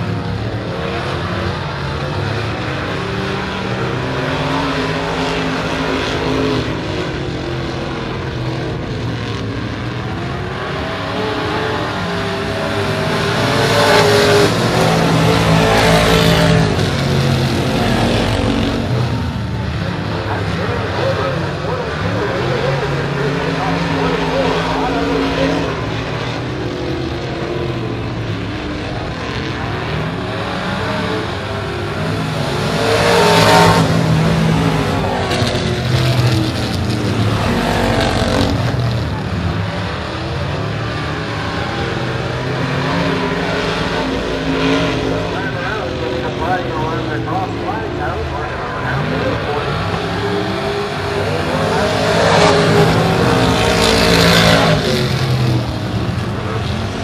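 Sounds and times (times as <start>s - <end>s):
race car engines passing: 0.0s - 57.0s.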